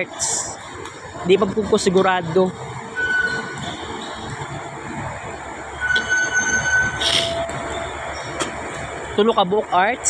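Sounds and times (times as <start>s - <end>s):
vehicle rumbling: 0.0s - 10.0s
high thin squeals: 5.8s - 7.5s.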